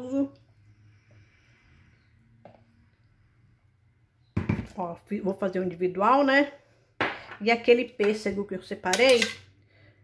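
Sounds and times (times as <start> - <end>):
jug knocking on counter: 4.4 - 4.7.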